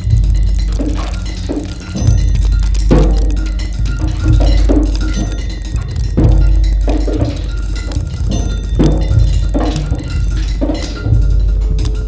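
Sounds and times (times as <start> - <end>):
drum kit played with sticks: 0.0 - 12.0
ringing metallic cymbal tones: 0.0 - 12.0.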